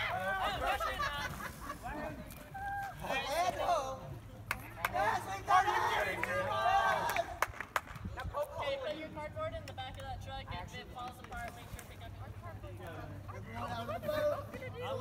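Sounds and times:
people calling out and chattering: 0.0s - 7.4s, 11.6s - 15.0s.

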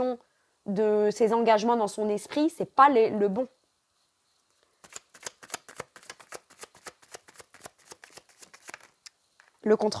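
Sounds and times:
cards being shuffled: 4.8s - 9.6s.

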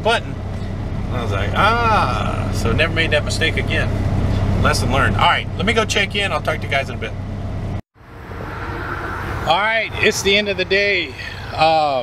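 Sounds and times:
outdoor background noise: 0.0s - 12.0s
truck engine idling hum: 0.0s - 12.0s.

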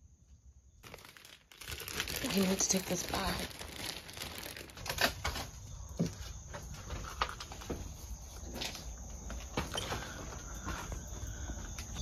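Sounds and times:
plastic bag crinkling: 0.8s - 5.7s.

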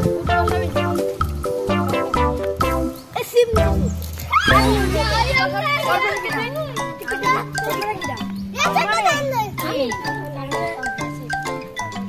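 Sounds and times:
background music with low bass: 0.0s - 12.0s
children's excited voices: 3.1s - 10.9s.

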